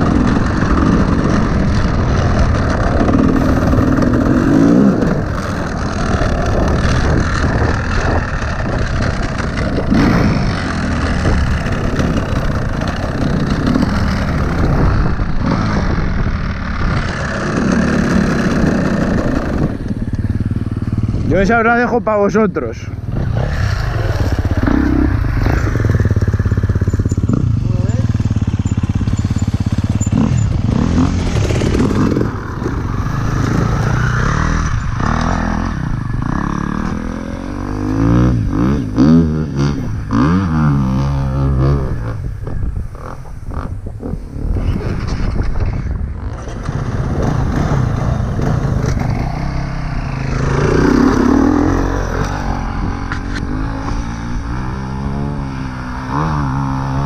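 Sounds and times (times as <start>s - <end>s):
dirt bike engines revving: 0.0s - 57.0s.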